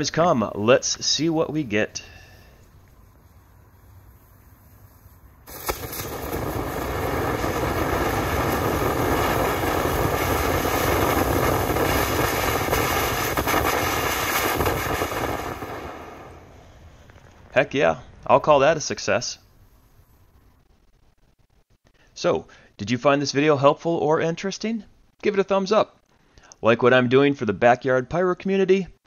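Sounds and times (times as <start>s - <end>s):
fireworks igniting: 2.0s - 17.6s
firework fountain rushing hiss: 3.7s - 17.1s.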